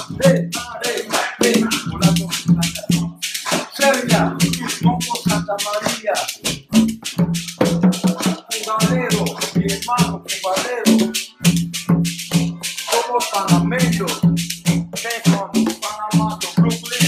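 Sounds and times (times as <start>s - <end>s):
conga drums played by hand: 0.0s - 17.0s
shaker rattling: 0.0s - 17.0s.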